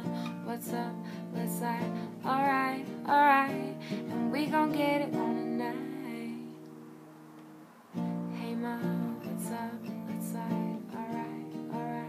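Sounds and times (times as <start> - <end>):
woman singing: 0.0 - 6.7, 8.0 - 12.0
acoustic guitar strumming: 0.0 - 12.0.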